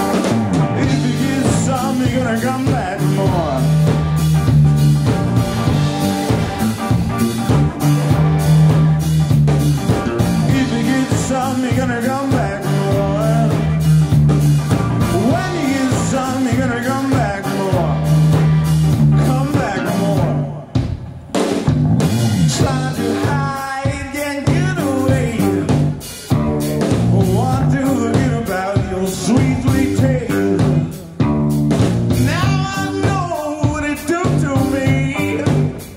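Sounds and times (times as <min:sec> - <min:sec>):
rock band playing: 0:00.0 - 0:35.9
lead vocal singing: 0:00.1 - 0:04.3, 0:10.3 - 0:14.2, 0:15.0 - 0:20.8, 0:22.4 - 0:26.3, 0:27.0 - 0:31.2, 0:32.2 - 0:35.9.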